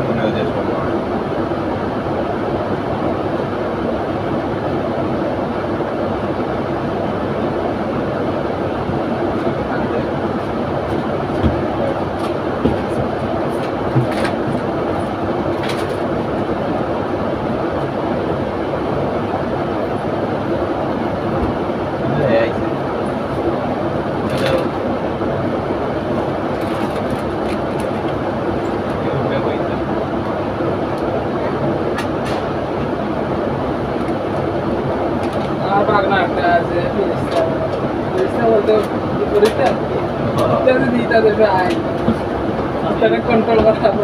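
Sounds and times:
diesel bus engine idling: 0.0 - 44.0.

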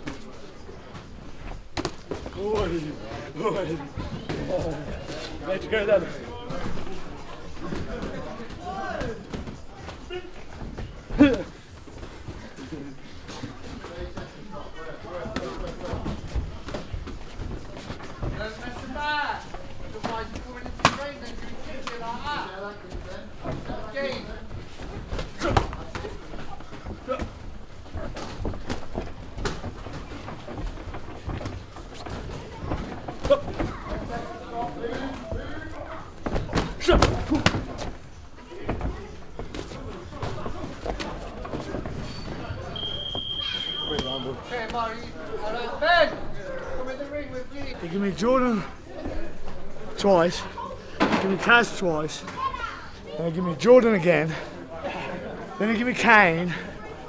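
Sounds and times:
voices in echoing gym: 0.0 - 57.0
high electronic beep: 42.8 - 44.1.

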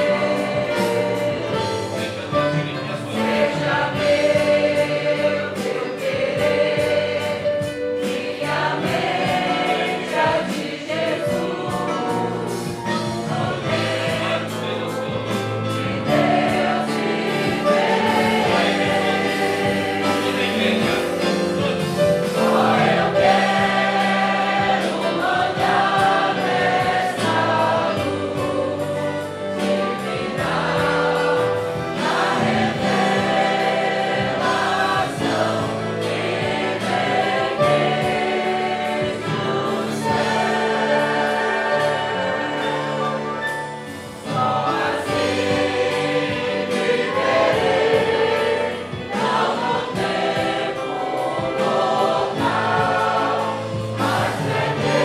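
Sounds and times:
congregation singing a hymn: 0.0 - 55.0
instrumental accompaniment: 0.0 - 55.0.

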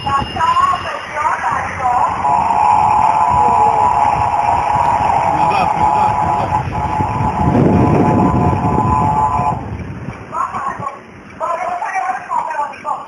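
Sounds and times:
moving car rumble: 0.0 - 12.0
steady multi-pitch tone: 0.0 - 13.0.

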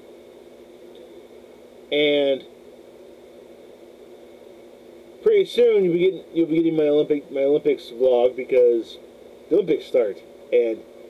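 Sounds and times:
faint hum and hiss: 0.0 - 11.0.

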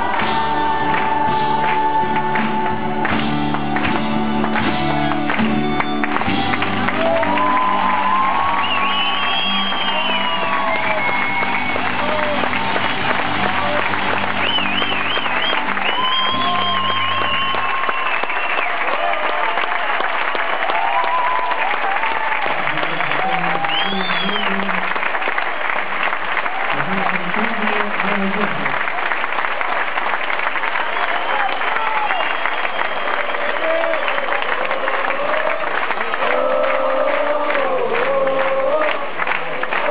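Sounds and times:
audience applauding and cheering: 0.0 - 39.9.

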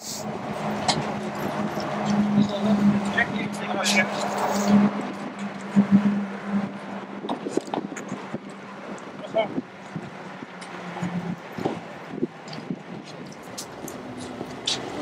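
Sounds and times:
indistinct voices: 0.0 - 8.3
low pulsing hum: 4.1 - 8.9.

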